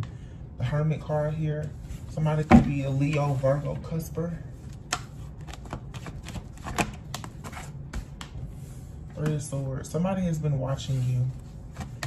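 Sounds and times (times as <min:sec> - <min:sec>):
cards being shuffled: 0:04.7 - 0:08.4.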